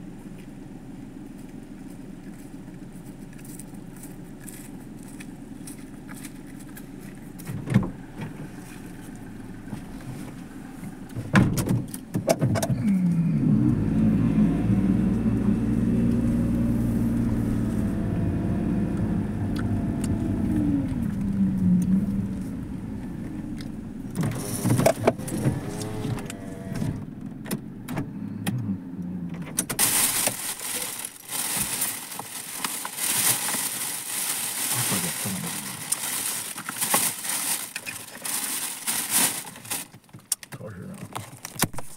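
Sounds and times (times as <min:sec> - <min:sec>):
car engine in cabin: 0:00.0 - 0:41.9
crackling rustle: 0:00.2 - 0:11.2, 0:29.8 - 0:41.9.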